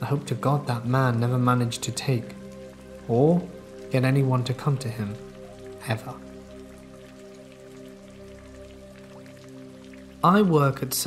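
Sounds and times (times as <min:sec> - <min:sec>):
background music sustained chord: 0:00.0 - 0:11.0
steady rain: 0:00.0 - 0:11.0.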